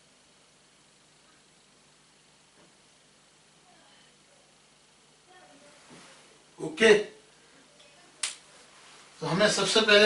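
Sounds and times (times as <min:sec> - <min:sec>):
sharp click: 0:08.2 - 0:08.4.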